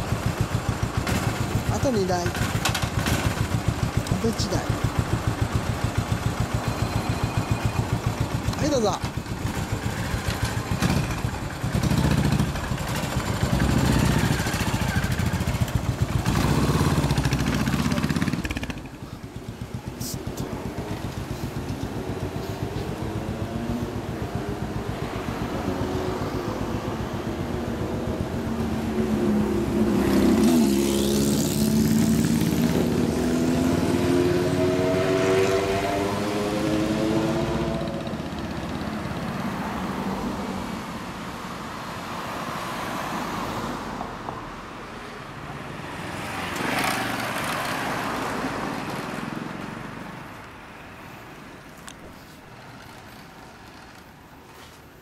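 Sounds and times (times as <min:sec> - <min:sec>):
vehicle engine accelerating: 0:00.0 - 0:18.9, 0:19.7 - 0:40.7
motorcycle engines revving: 0:00.0 - 0:41.2, 0:46.1 - 0:49.9
traffic: 0:00.0 - 0:55.0.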